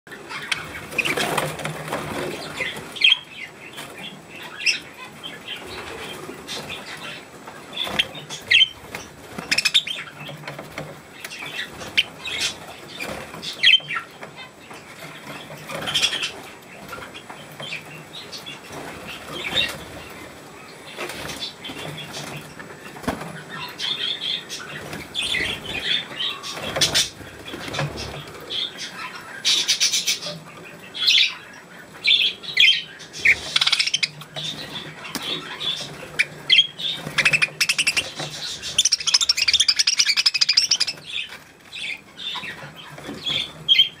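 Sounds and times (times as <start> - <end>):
budgerigars fluttering wings: 0.2 - 4.8, 5.5 - 30.3, 32.2 - 44.0.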